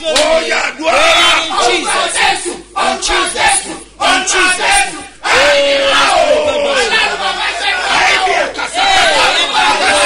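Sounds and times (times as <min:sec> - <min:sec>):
man shouting prayer: 0:00.0 - 0:10.0.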